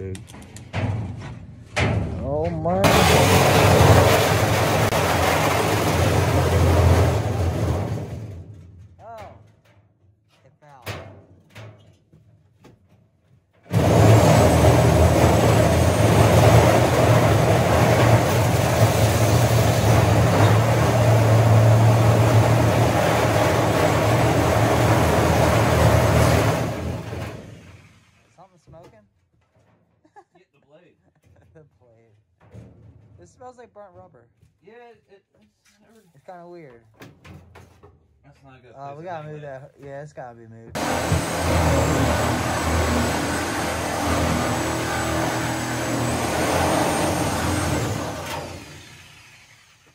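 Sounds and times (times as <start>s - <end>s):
reciprocating saw cutting metal: 13.7s - 28.0s, 40.8s - 49.9s.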